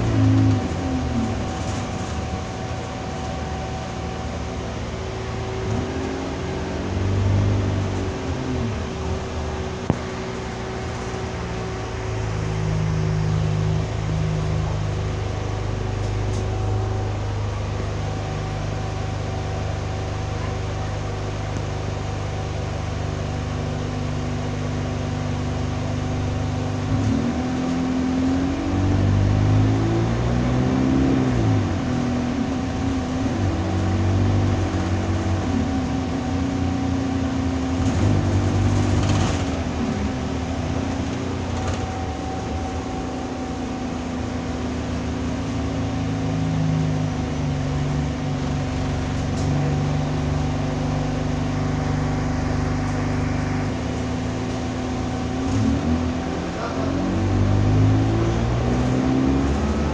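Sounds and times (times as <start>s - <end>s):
bus diesel engine: 0.0s - 59.9s.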